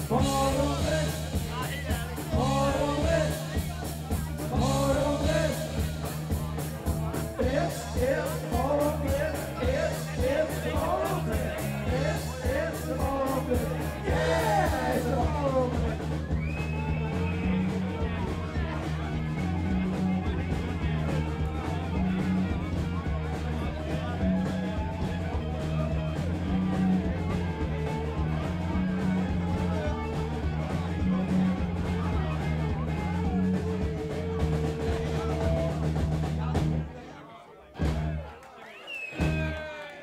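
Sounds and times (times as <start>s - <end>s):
drum kit beat: 0.0s - 36.9s, 37.8s - 38.2s, 39.2s - 39.6s
live rock band playing: 0.0s - 36.9s, 39.2s - 39.6s.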